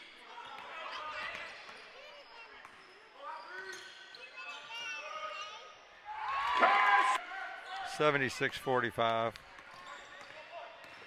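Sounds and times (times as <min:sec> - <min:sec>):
players and spectators calling: 0:06.0 - 0:07.2.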